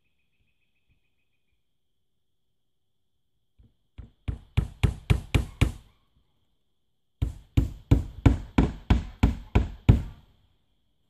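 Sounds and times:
hammer driving nails into wood: 4.0s - 5.8s, 7.2s - 10.2s.

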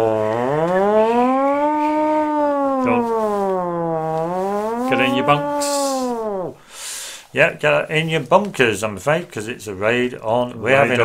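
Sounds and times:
air-raid siren wailing: 0.0s - 6.6s.

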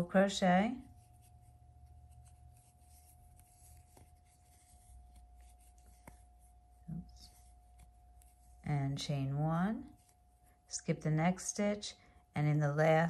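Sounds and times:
yarn and crochet hook rubbing: 0.0s - 11.4s
steady low hum: 0.0s - 13.0s.

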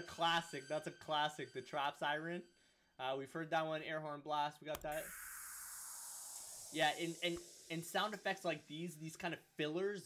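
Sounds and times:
white-noise downsweep hiss: 4.9s - 10.0s.

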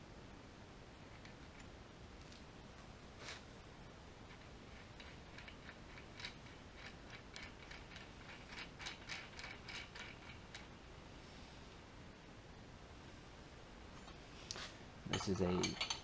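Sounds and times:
faint metal clicks and ticks: 4.2s - 10.7s.

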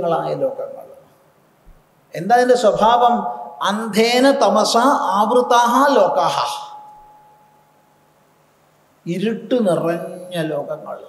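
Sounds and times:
faint steady high tone: 0.0s - 11.0s.

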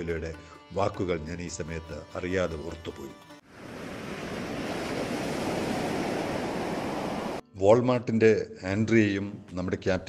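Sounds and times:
sea waves rushing: 3.5s - 7.4s.

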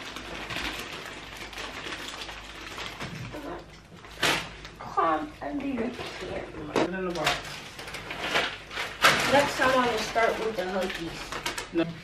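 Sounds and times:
candy wrappers crinkling: 0.0s - 4.8s, 5.6s - 12.0s.

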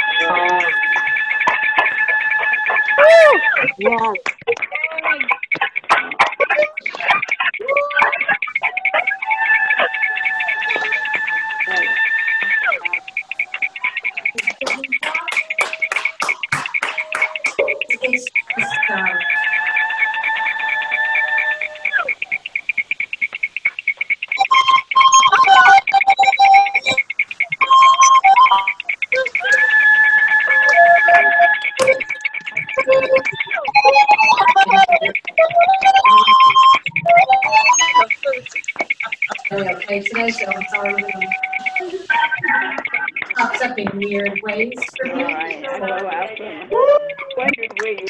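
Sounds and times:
people clapping: 0.0s - 48.0s
pulsing ringing tone: 0.0s - 48.0s
voices: 0.0s - 48.0s.

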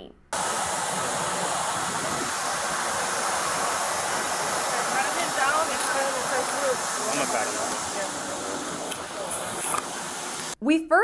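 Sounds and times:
steady rushing hiss: 0.4s - 10.6s.

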